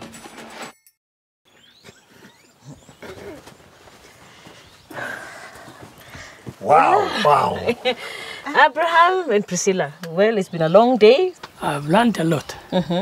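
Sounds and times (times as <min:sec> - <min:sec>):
short chirping calls: 0:01.5 - 0:03.3.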